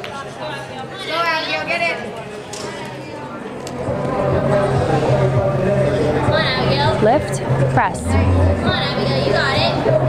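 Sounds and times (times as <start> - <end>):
background chatter of voices: 0.0 - 10.0.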